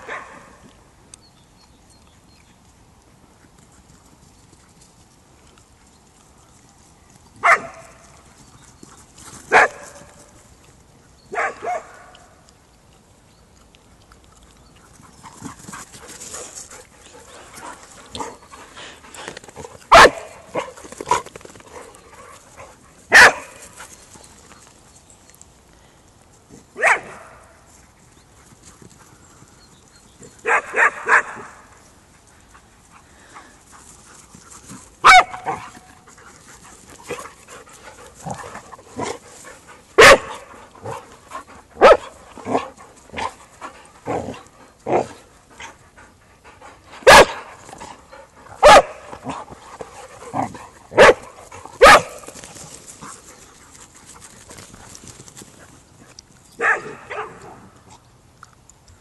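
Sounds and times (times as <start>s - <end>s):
dogs barking in sharp bursts: 0.0s - 0.7s, 7.4s - 8.2s, 9.5s - 10.2s, 11.3s - 12.4s, 19.6s - 23.9s, 26.8s - 27.6s, 30.4s - 31.9s, 35.0s - 36.1s, 37.0s - 45.8s, 46.7s - 53.2s, 56.6s - 57.7s.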